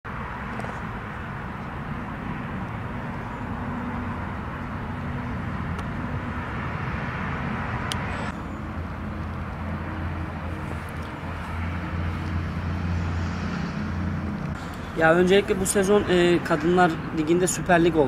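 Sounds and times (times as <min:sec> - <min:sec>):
distant road traffic rumble: 0:00.1 - 0:18.0.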